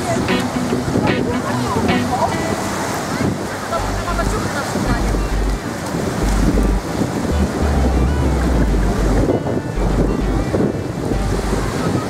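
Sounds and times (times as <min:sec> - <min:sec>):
waves washing over sandy shore: 0:00.0 - 0:07.4
wind buffeting microphone: 0:00.0 - 0:12.0.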